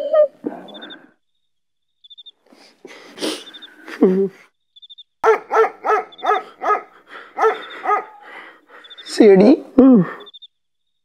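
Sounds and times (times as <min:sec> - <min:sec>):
dog barking: 0:05.2 - 0:08.4.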